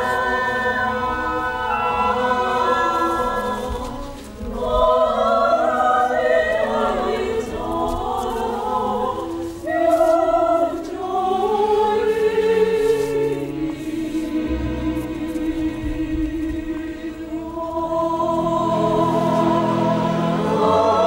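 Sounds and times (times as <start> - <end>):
opera chorus singing: 0.0 - 21.0.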